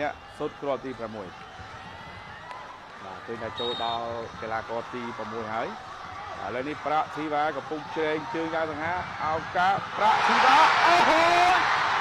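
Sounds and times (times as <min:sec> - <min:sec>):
football commentator speaking excitedly: 0:03.0 - 0:05.8, 0:06.4 - 0:11.7.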